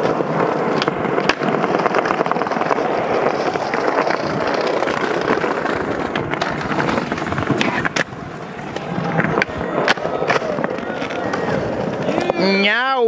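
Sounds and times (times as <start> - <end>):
skateboard wheels rolling on tiles: 0.0 - 12.8
skateboard clacking on ground: 0.0 - 13.0.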